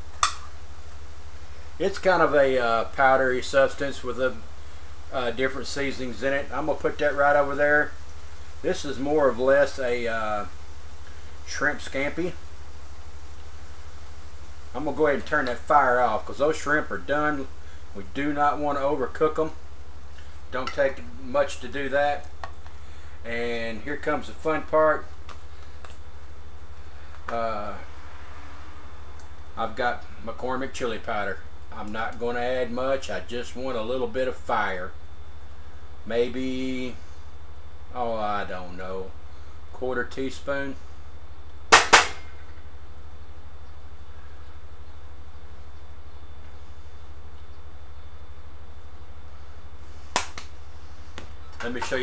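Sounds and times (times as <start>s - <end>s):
low background hum: 0.0s - 52.0s.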